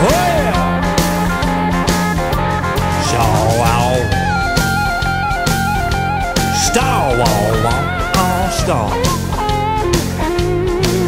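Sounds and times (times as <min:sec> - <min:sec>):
drum kit beat: 0:00.0 - 0:11.0
guitar with bending notes: 0:00.0 - 0:11.0.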